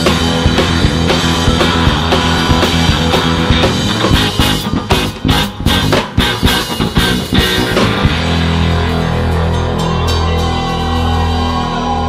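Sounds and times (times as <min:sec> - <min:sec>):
drumming: 0:00.0 - 0:12.0
rock band sustained chord: 0:00.0 - 0:12.0.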